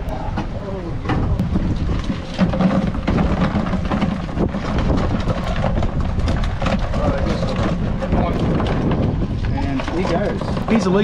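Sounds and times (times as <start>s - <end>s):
wind buffeting microphone: 0.0s - 11.0s
knocks and rattles in plastic tub: 0.4s - 11.0s.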